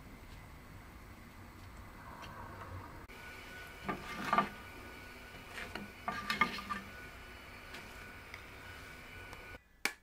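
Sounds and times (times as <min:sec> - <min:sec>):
steady hiss: 0:03.1 - 0:09.6
spatula knocking and scraping pan: 0:03.7 - 0:04.6, 0:05.4 - 0:07.0.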